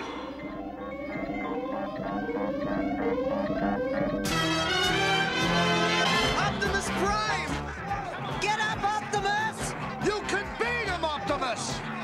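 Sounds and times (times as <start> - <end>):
synthesizer rising sweep: 0.0 - 5.6
pulsing synthesizer tone: 0.0 - 5.7.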